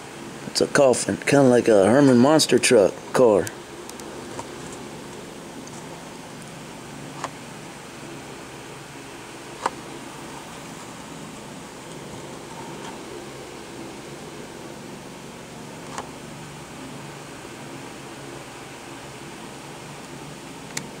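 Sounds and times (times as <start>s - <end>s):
steady background hiss: 0.0s - 21.0s.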